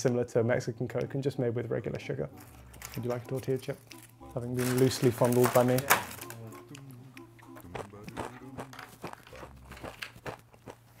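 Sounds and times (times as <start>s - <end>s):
quiet background music: 0.0s - 11.0s
tortilla chips crunching: 7.6s - 11.0s.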